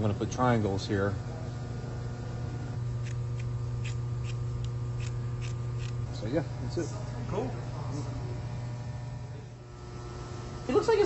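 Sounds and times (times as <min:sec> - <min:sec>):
loud low hum: 0:00.0 - 0:10.8.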